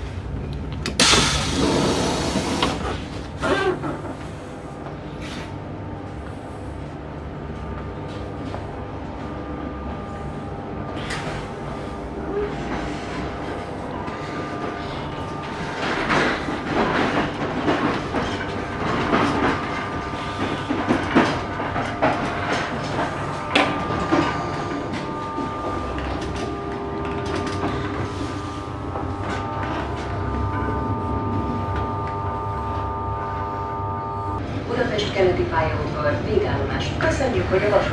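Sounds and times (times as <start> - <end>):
train engine drone: 0.0 - 37.9
knocks and clatter: 12.6 - 28.2.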